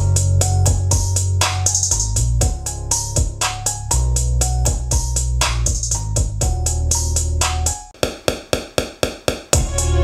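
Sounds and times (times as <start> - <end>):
electronic r and b beat: 0.0 - 10.0.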